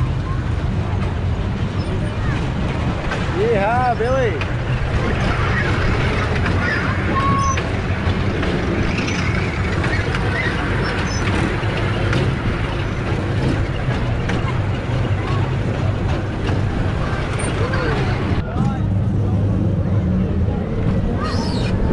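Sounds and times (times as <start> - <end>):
fairground ride humming: 0.0 - 21.9
people chattering: 0.0 - 21.9.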